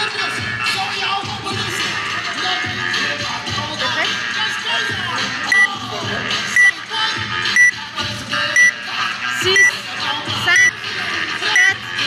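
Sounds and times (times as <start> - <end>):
background music with beat: 0.0 - 12.0
timer beeping: 6.6 - 6.8, 7.6 - 7.8, 8.6 - 8.8, 9.5 - 9.8, 10.5 - 10.7, 11.6 - 11.8.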